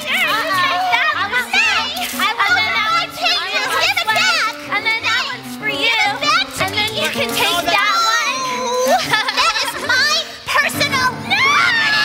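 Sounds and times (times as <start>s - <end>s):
people shouting excitedly: 7.6s - 10.2s, 10.9s - 12.0s.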